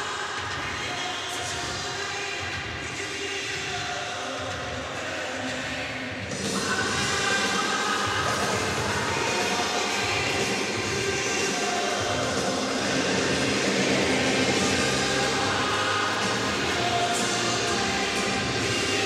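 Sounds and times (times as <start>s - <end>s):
rock music over sound system: 6.3s - 19.0s.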